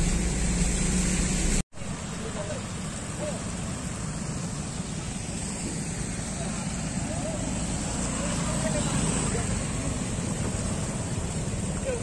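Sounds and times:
scooter engines rumbling: 0.0s - 12.0s.

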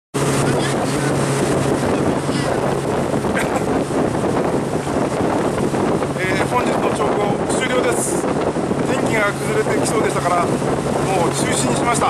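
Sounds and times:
boat engine humming: 0.2s - 12.0s
wind on microphone: 0.2s - 12.0s.

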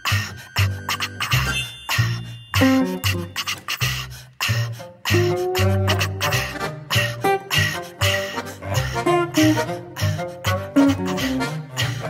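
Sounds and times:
plucked guitar: 0.8s - 3.7s, 4.8s - 12.0s
acoustic jazz band playing: 2.6s - 3.5s, 5.1s - 12.0s.

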